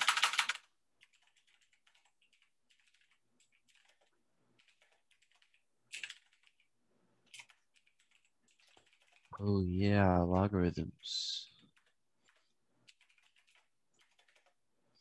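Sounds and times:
typing on computer keyboard: 0.0s - 9.3s, 11.7s - 14.6s.

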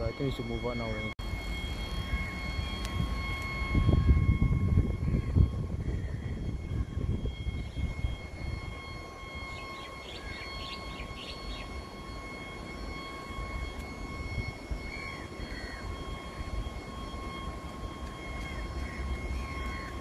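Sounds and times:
electronic warning tone: 0.0s - 20.0s
low rumble: 1.0s - 9.0s.

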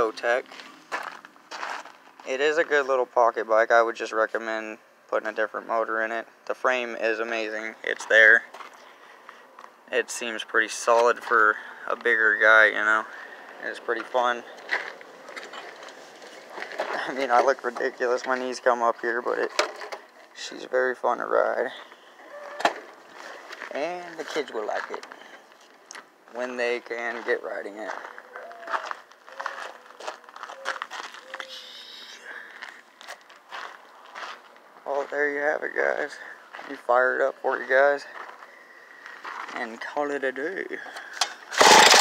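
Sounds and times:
man speaking: 0.0s - 0.5s, 2.2s - 8.5s, 9.9s - 14.6s, 16.9s - 19.6s, 20.3s - 22.6s, 23.6s - 25.2s, 26.3s - 28.1s, 34.8s - 38.2s, 39.5s - 40.9s
footsteps on gravel: 0.1s - 2.8s, 8.0s - 9.8s, 13.0s - 19.1s, 21.7s - 37.0s, 37.6s - 40.0s.

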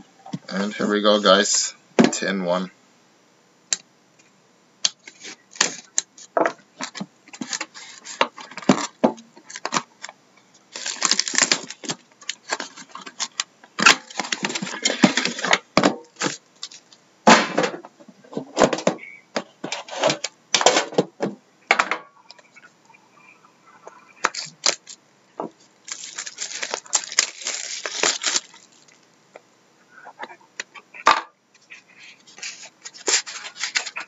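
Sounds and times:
plastic shrink wrap crinkling: 5.0s - 17.0s, 24.2s - 25.0s, 25.6s - 29.1s, 32.2s - 34.0s.

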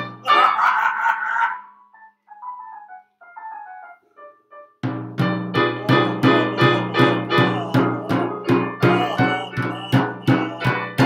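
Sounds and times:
piano chords: 2.0s - 11.0s
held high note: 5.7s - 11.0s.

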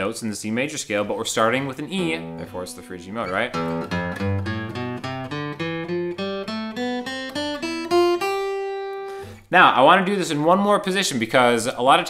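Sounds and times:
acoustic guitar picked notes: 1.5s - 9.7s.

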